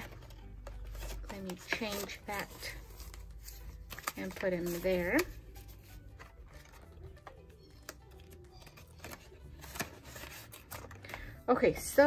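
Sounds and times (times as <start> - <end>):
paper banknotes handling: 0.0 - 11.3
faint background music: 0.0 - 12.0.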